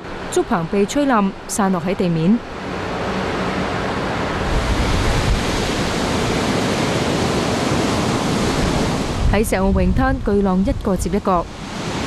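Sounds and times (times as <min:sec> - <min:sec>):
waves breaking on beach: 0:00.0 - 0:10.2, 0:10.8 - 0:12.0
strong wind: 0:00.0 - 0:12.0.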